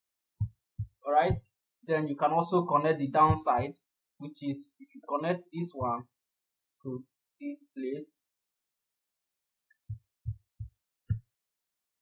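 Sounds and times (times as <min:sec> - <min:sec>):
low dull thumps: 0:00.4 - 0:01.5, 0:03.2 - 0:03.7, 0:09.9 - 0:11.3.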